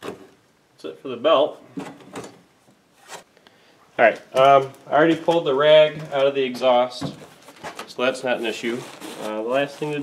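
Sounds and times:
soft rubbing: 7.2s - 10.0s.

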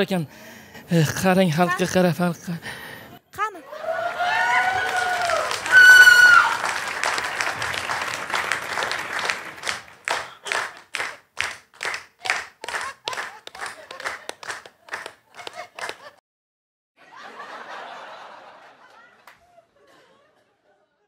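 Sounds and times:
woman shouting high-pitched: 3.4s - 3.7s
audience applause: 3.7s - 16.2s
rhythmic clapping in unison: 4.8s - 16.2s.

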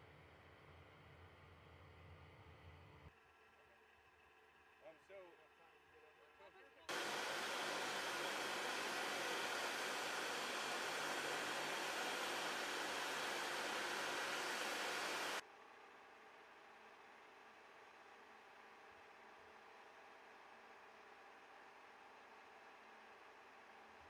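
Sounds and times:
loud mechanical roar: 6.9s - 15.4s.

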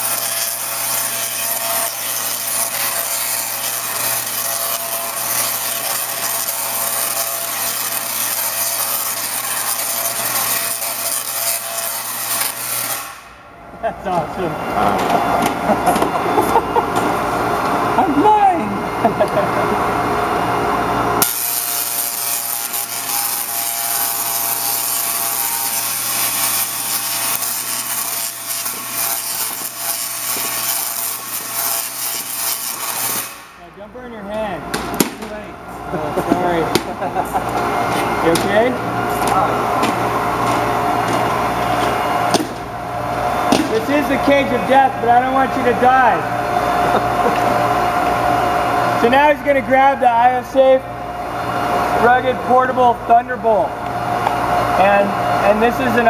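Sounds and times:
tesla coil arcs buzzing: 0.0s - 56.0s
people talking: 13.8s - 16.6s, 18.0s - 19.6s, 33.6s - 37.4s, 38.2s - 39.7s, 43.6s - 46.3s, 49.0s - 50.8s, 52.0s - 53.7s, 54.8s - 56.0s.

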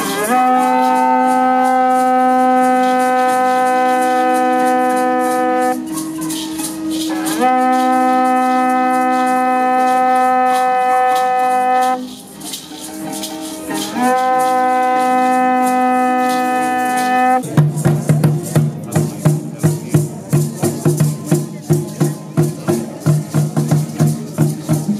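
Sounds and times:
conch-shell trumpet blowing: 0.0s - 17.5s
hand rattles shaking: 0.0s - 24.9s.

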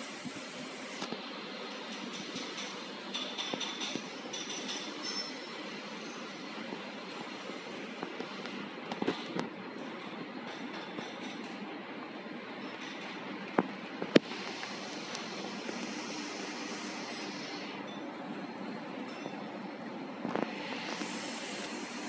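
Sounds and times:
workshop hum and hiss: 0.0s - 22.0s.

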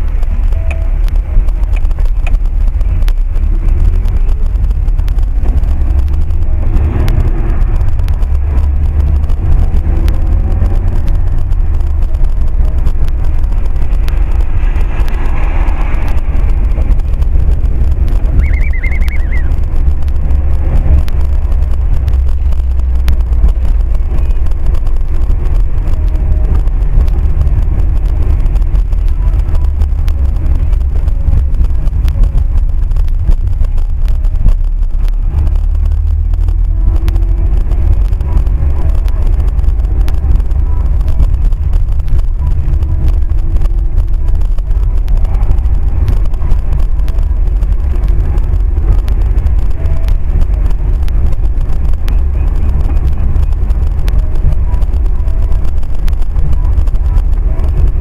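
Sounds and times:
car interior driving drone: 0.0s - 58.0s
road noise on wet street: 0.0s - 58.0s
brief high warbling sound: 18.3s - 19.6s.

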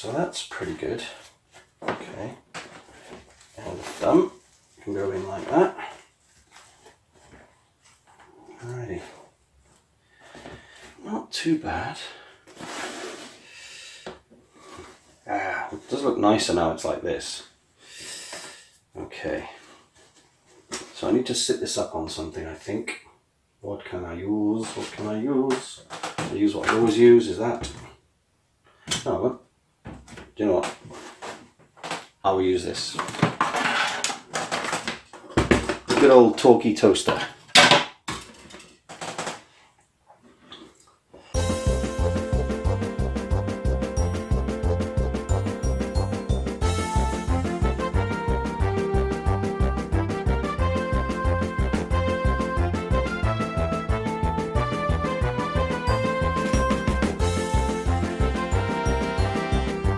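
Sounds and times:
foam prop rubbing and rustling: 12.6s - 13.4s, 24.5s - 27.0s, 30.7s - 31.6s, 33.2s - 34.8s
music with regular bass beat: 41.4s - 59.9s.

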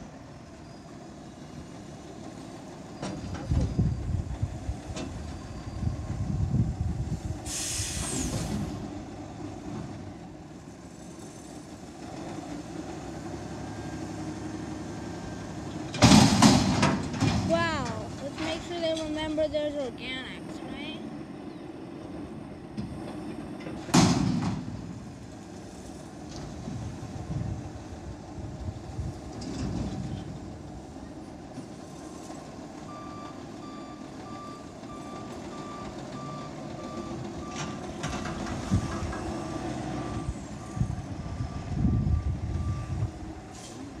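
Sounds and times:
reversing alarm beeping: 32.9s - 37.8s, 40.0s - 43.1s.

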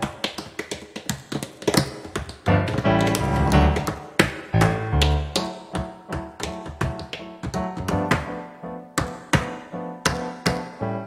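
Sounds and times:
tap dancing on a tap board: 0.0s - 8.4s, 9.0s - 10.8s.

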